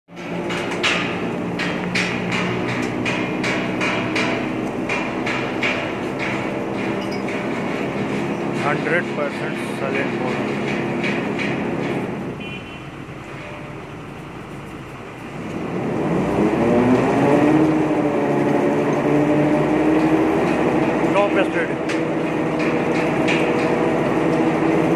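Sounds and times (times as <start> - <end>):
high-pitched mechanical rattles: 0.1 - 12.4, 13.0 - 24.9
metal knocks clattering: 0.1 - 12.5, 18.4 - 24.9
drilling rig mechanical hum: 0.1 - 24.9.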